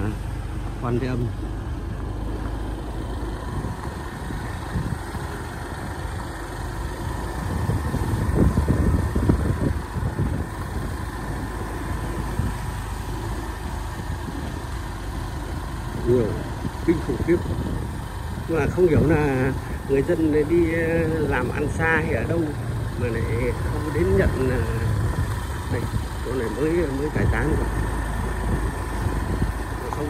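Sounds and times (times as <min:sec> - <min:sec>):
vehicle engine running: 0:00.0 - 0:30.0
wind rumbling on microphone: 0:01.2 - 0:30.0.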